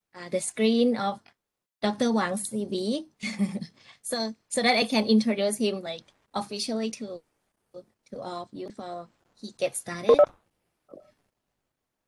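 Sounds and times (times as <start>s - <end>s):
woman speaking: 8.2s - 10.3s
faint brief blip: 10.1s - 10.3s.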